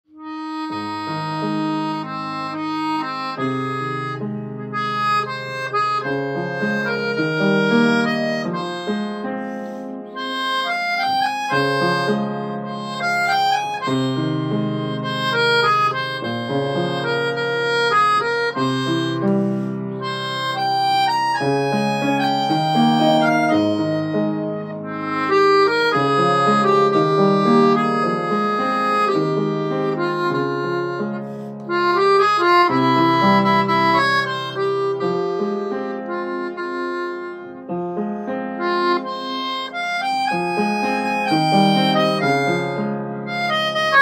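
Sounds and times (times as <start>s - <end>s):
melodica melody: 0.0s - 44.0s
piano chords: 0.1s - 44.0s.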